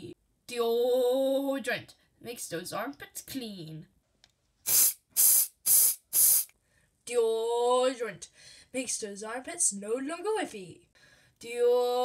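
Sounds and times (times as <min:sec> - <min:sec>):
aerosol can spraying: 0:04.7 - 0:06.5.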